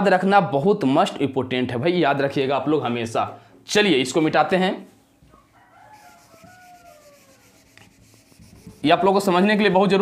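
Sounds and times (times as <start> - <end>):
distant rooster crowing: 5.2 - 8.2
duster rubbing whiteboard: 5.9 - 10.0.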